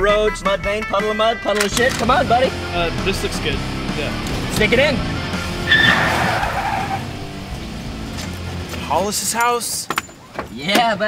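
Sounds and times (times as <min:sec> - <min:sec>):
music playing: 0:00.0 - 0:09.7
truck tyres squealing: 0:03.1 - 0:08.7.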